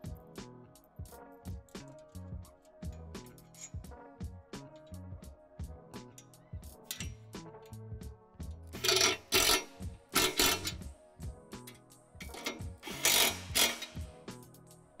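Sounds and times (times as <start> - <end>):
background music: 0.0 - 15.0
ratchet wrench clicking: 6.2 - 7.2, 8.8 - 10.8, 11.6 - 14.1.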